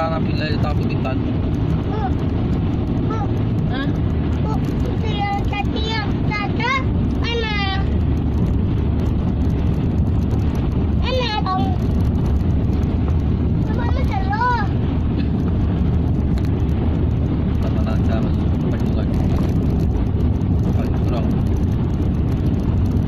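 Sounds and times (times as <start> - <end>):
car cabin road rumble: 0.0 - 23.0.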